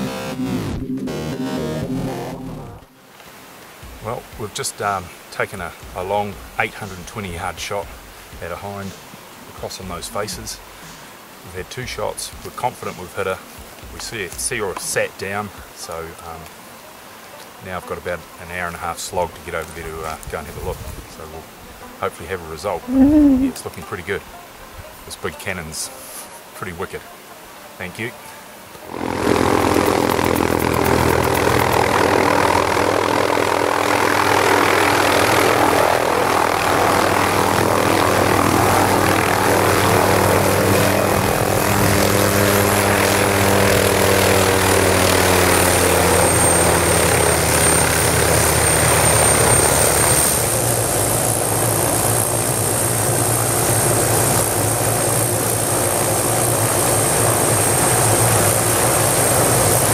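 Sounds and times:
high turbine whine: 0.0s - 11.5s, 28.8s - 59.9s
helicopter rotor beat: 5.7s - 8.8s, 9.8s - 11.0s, 28.9s - 59.9s.

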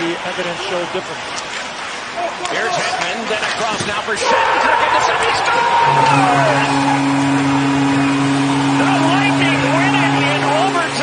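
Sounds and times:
noisy crowd background: 0.0s - 11.0s
goal horn blaring: 4.7s - 11.0s.

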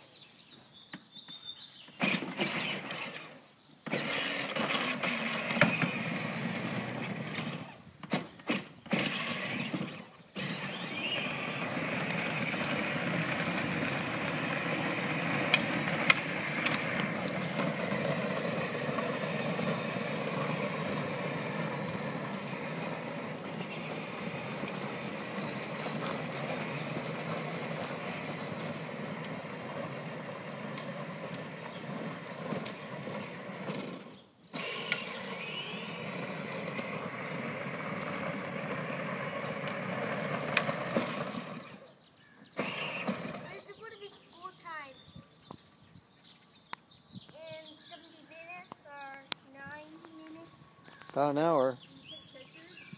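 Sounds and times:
toy car electric motor and wheels: 2.0s - 44.7s
sharp clicks: 15.4s - 17.4s, 40.5s - 41.2s.

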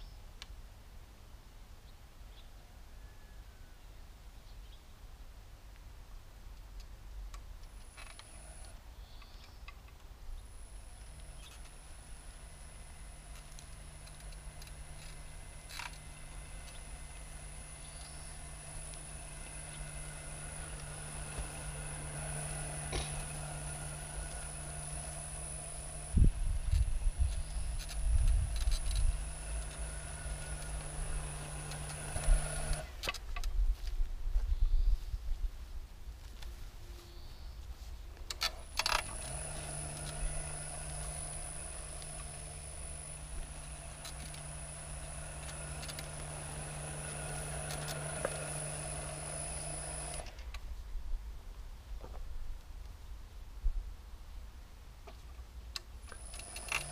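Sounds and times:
electric cultivator motor whining: 7.6s - 9.4s, 10.4s - 33.1s, 38.4s - 50.6s, 56.0s - 56.9s
motor starting click: 7.6s - 9.6s, 10.4s - 33.2s, 38.3s - 50.6s, 56.0s - 56.9s.

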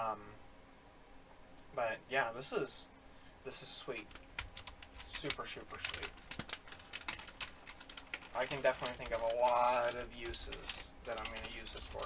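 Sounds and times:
plastic package crackling: 4.0s - 12.0s.

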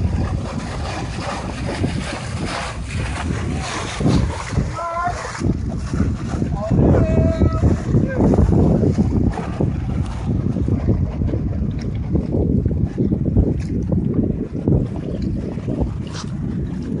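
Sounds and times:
water rushing along hull: 0.0s - 17.0s
wind buffeting microphone: 0.0s - 17.0s.

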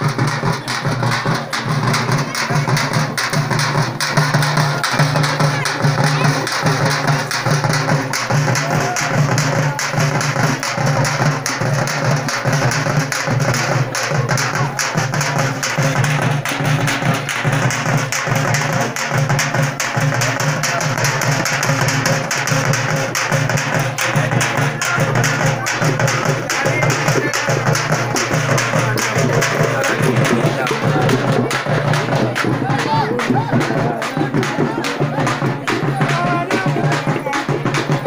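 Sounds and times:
frame drums played with sticks: 0.0s - 38.0s.

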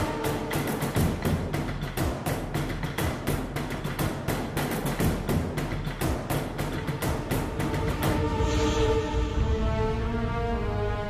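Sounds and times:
rapid percussion hits: 0.0s - 8.8s
low sustained drone: 7.3s - 11.0s.

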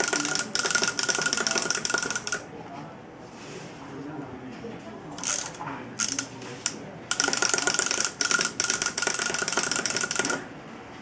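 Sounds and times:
clockwork toy whirring rattle: 0.0s - 2.4s, 5.2s - 10.4s.

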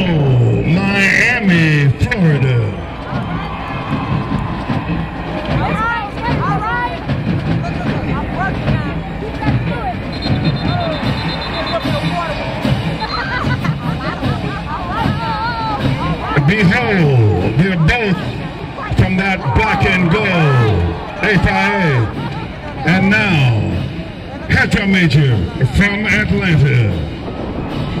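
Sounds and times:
crowd voices babbling: 0.0s - 28.0s.

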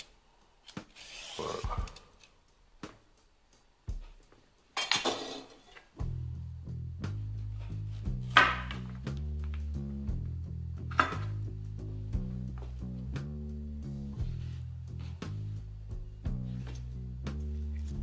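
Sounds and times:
background music with bass line: 5.9s - 18.0s.

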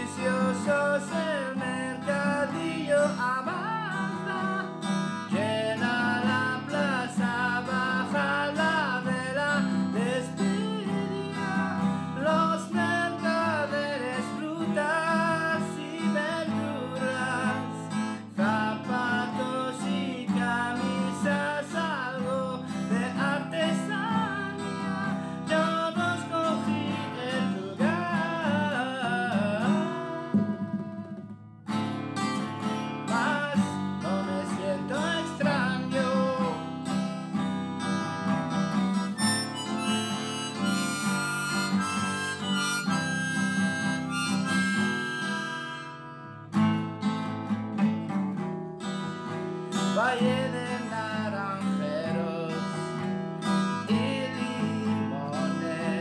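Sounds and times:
strummed acoustic guitar: 0.0s - 56.0s
harmonica: 37.8s - 46.6s.

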